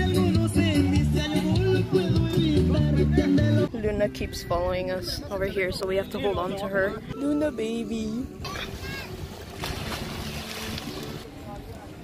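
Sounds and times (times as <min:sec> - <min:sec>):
churning water: 0:08.3 - 0:12.0
splash into water: 0:08.4 - 0:11.3.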